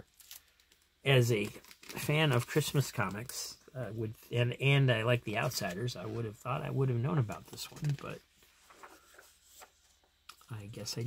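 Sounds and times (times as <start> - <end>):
paper page turning: 7.2 - 10.4.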